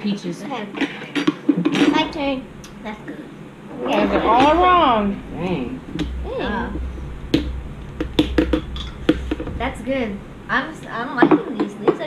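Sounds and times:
faint low hum: 1.7s - 12.0s.

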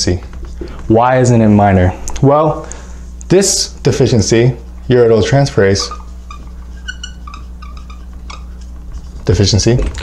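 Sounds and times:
steady low hum: 0.0s - 10.0s
marker squeaking on a whiteboard: 4.8s - 10.0s.

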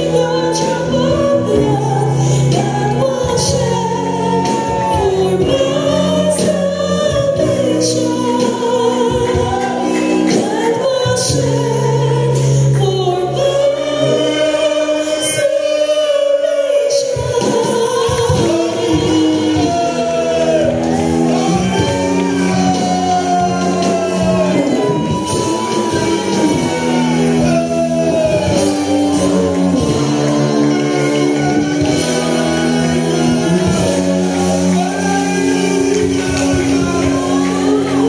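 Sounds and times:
choir singing gospel song: 0.0s - 38.0s.

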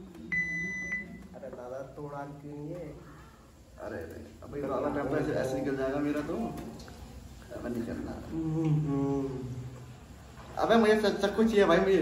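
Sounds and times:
high electronic timer beep: 0.3s - 1.2s.

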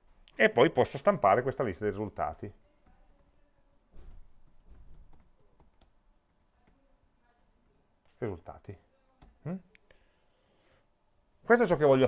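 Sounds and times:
typing on keyboard: 2.6s - 7.8s.

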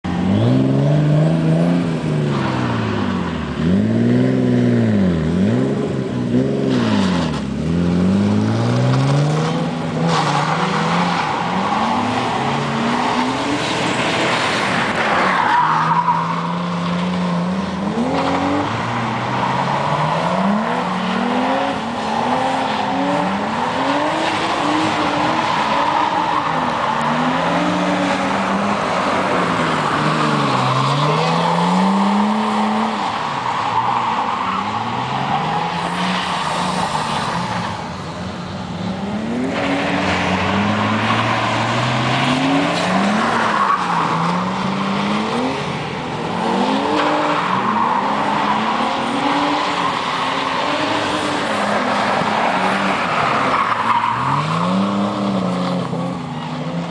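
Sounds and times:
car engine revving: 0.0s - 56.9s.

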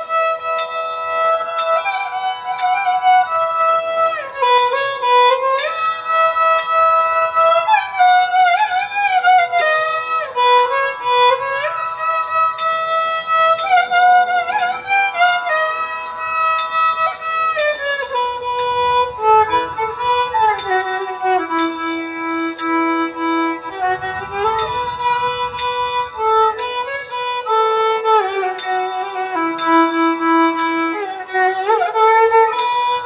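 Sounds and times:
violin melody with slides: 0.0s - 33.0s.

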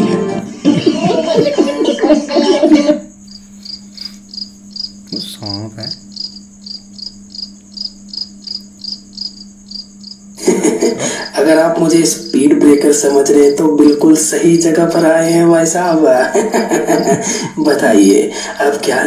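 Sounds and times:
faint hum: 0.0s - 19.0s
cricket chirping: 0.2s - 19.0s.

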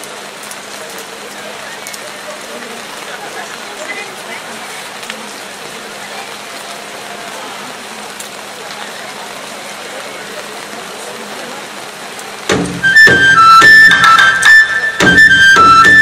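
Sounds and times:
faint murmuring voices: 0.0s - 13.0s
outdoor background hiss: 0.0s - 16.0s
loud dance music: 12.5s - 16.0s.

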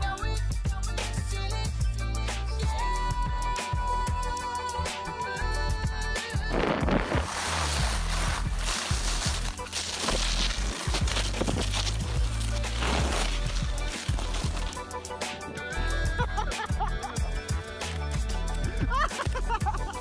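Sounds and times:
background music: 0.0s - 20.0s
skis sliding over snow: 6.5s - 14.9s.

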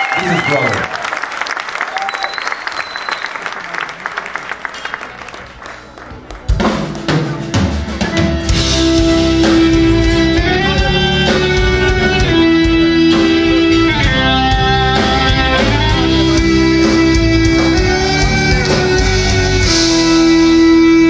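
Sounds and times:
metal band playing: 5.8s - 21.0s.

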